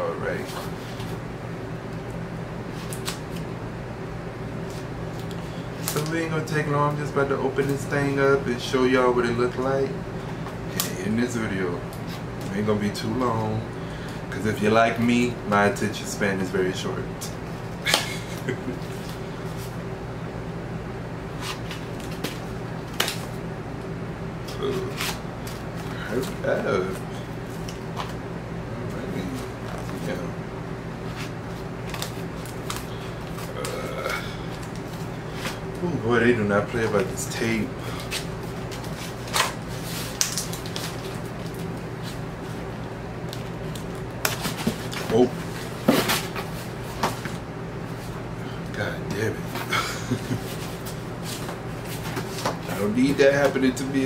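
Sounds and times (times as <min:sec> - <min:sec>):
low room hum: 0:00.0 - 0:54.0
tape and cardboard ripping: 0:24.8 - 0:25.2.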